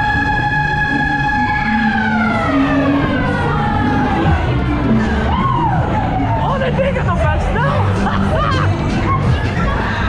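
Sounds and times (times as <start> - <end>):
siren-like tone sliding down: 0.0 - 6.5
fairground ride music: 0.0 - 10.0.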